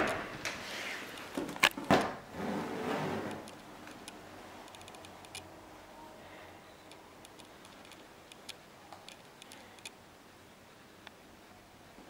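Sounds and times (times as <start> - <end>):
faint sharp clicks: 6.9 - 10.0.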